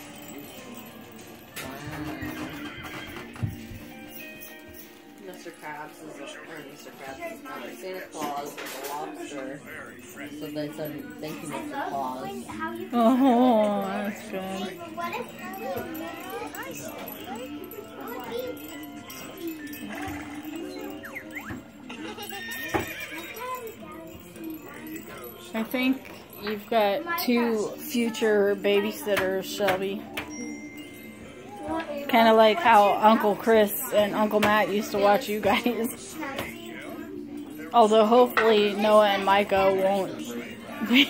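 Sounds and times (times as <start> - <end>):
toy horse neigh: 20.2 - 23.4
recorded horse whinny: 21.9 - 23.4.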